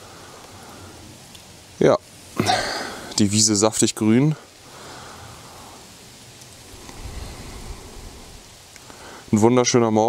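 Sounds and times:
light rain in woodland: 0:00.0 - 0:10.0
low rumble: 0:06.6 - 0:08.7.

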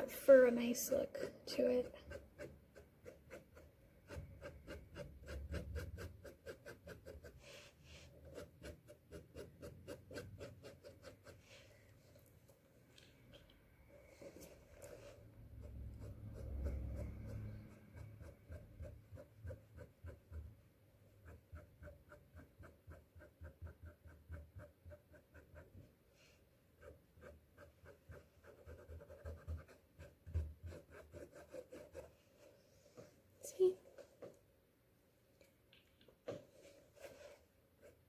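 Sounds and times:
paintbrush scratching on canvas: 0:00.9 - 0:11.7, 0:14.2 - 0:33.1, 0:36.5 - 0:38.0.

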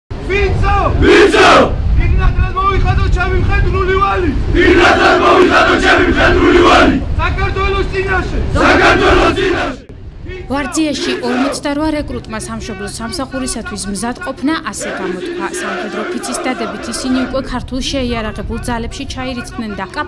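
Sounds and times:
group shouting in unison: 0:00.7 - 0:01.8, 0:04.6 - 0:07.0, 0:08.5 - 0:11.6, 0:14.8 - 0:17.4.

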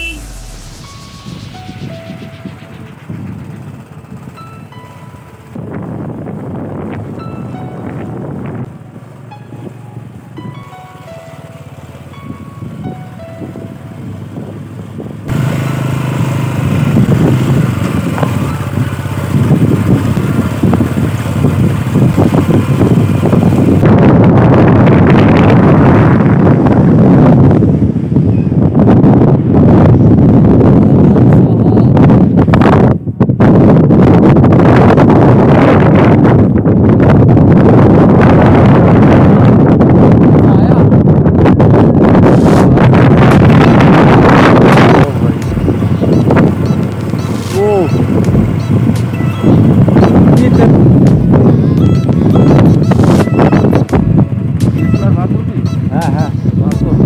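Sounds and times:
background music: 0:00.0 - 0:06.0, 0:06.9 - 0:14.6, 0:45.0 - 0:57.0
motorcycle engine running: 0:00.0 - 0:40.3, 0:41.0 - 0:57.0
wind buffeting on microphone: 0:00.2 - 0:10.6, 0:12.1 - 0:57.0.

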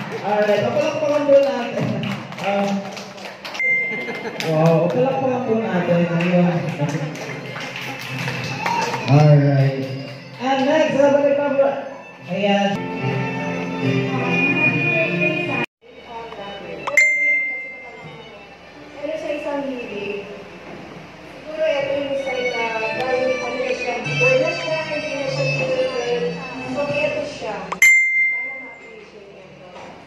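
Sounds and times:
bright bell-like ding: 0:03.6 - 0:04.2, 0:16.9 - 0:18.0, 0:27.8 - 0:29.0
high-pitched beep: 0:03.6 - 0:04.3, 0:16.9 - 0:18.0, 0:27.8 - 0:29.0.

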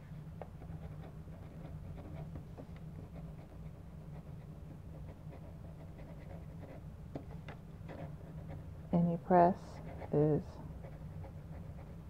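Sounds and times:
steady low hum: 0:00.0 - 0:12.0
pen scratching on paper: 0:00.6 - 0:02.4, 0:03.0 - 0:06.8, 0:07.9 - 0:08.6, 0:09.7 - 0:12.0.

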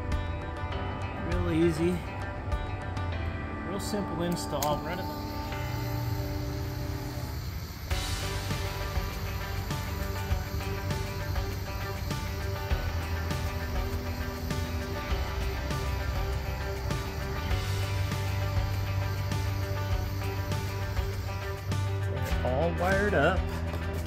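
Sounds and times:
background music with held notes: 0:00.0 - 0:24.0
bass line: 0:00.0 - 0:24.0.

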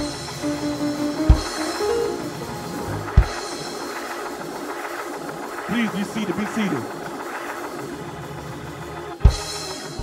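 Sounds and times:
live church band: 0:00.0 - 0:03.8
kick drum hits: 0:01.1 - 0:01.8, 0:03.1 - 0:03.5, 0:09.2 - 0:09.6.

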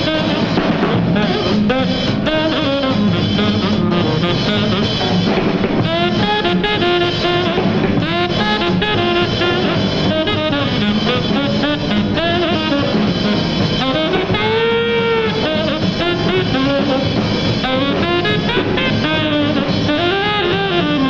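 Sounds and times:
drums: 0:00.0 - 0:21.0
tenor saxophone jazz solo: 0:00.0 - 0:21.0
upright bass: 0:00.0 - 0:21.0.

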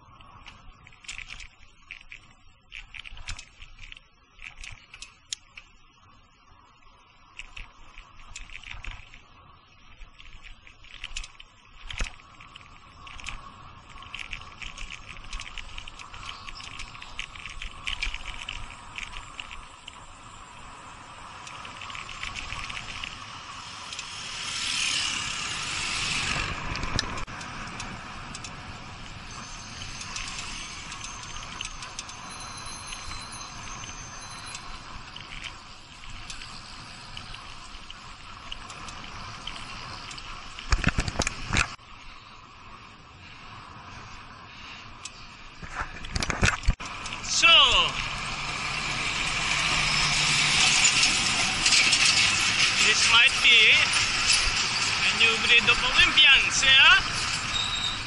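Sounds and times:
wind and road noise: 0:00.0 - 0:58.0
truck engine passing: 0:47.8 - 0:55.7.

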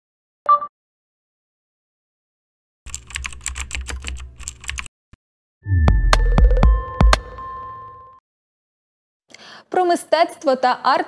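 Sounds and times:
computer keyboard typing: 0:02.9 - 0:04.9.

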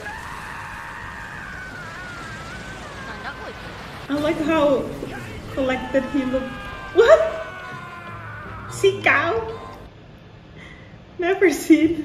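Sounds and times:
long high-pitched scream: 0:00.0 - 0:03.8, 0:05.1 - 0:09.9.

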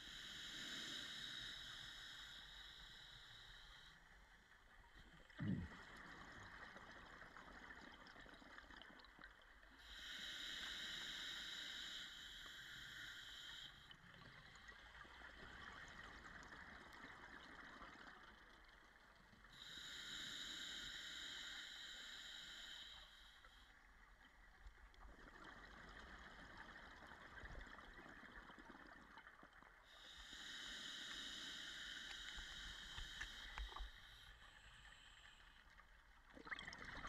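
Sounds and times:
regulator hissing inhalation: 0:00.0 - 0:04.0, 0:09.8 - 0:13.9, 0:19.6 - 0:23.5, 0:30.0 - 0:35.6
exhaled bubbles gurgling: 0:36.3 - 0:37.0.

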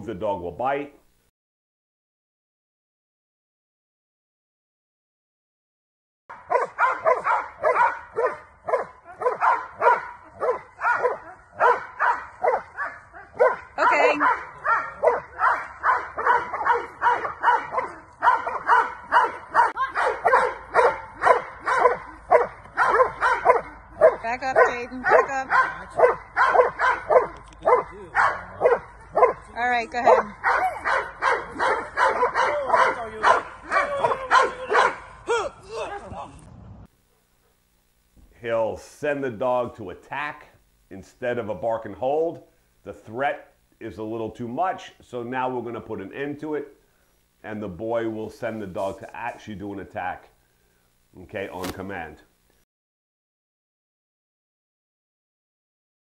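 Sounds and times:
dog barking rapidly: 0:06.3 - 0:35.2.

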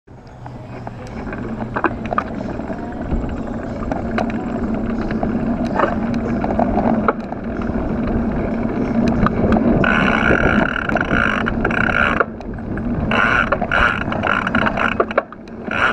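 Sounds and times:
bike clicking and rattling: 0:00.1 - 0:15.9
bike tyres rolling on asphalt: 0:00.1 - 0:15.9.

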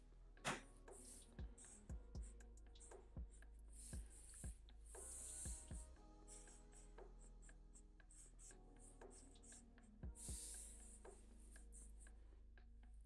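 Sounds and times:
marker scratching on paper: 0:03.8 - 0:07.2.

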